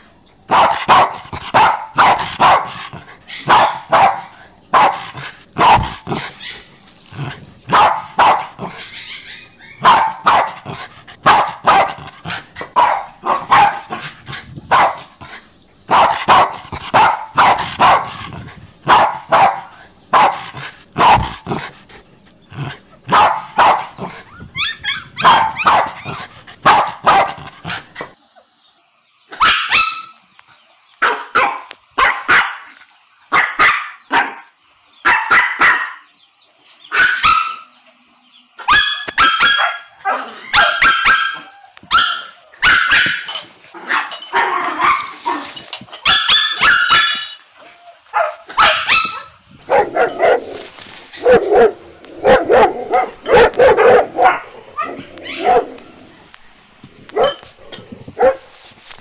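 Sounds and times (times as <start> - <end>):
puppies yipping and barking: 0.5 - 15.2, 22.3 - 28.2, 38.6 - 56.4.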